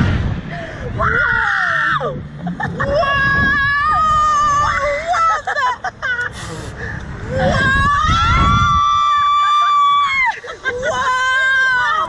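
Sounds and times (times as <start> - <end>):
wind noise rush: 0.0 - 12.0
woman screaming: 7.3 - 12.0.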